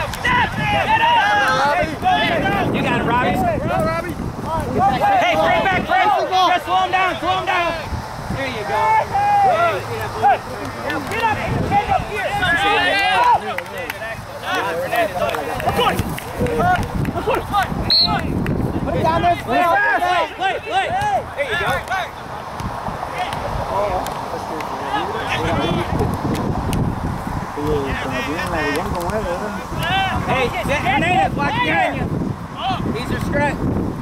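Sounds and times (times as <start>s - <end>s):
players shouting calls: 0.0s - 26.8s, 27.4s - 33.6s.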